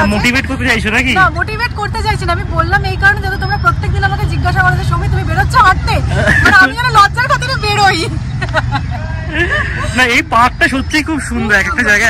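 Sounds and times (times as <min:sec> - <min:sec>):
woman talking: 0:01.3 - 0:08.2
woman laughing: 0:06.1 - 0:07.0, 0:08.3 - 0:10.0.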